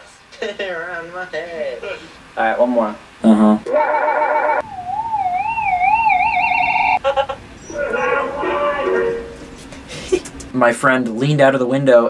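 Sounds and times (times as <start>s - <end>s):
warbling siren sound effect: 4.0s - 7.0s
recorded voice yelling: 7.7s - 9.2s.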